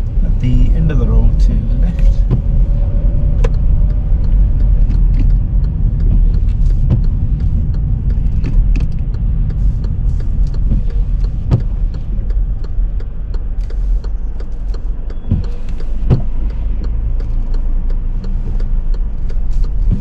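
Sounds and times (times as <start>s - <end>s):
car engine and road rumble: 0.0s - 20.0s
faint clicks: 2.0s - 20.0s.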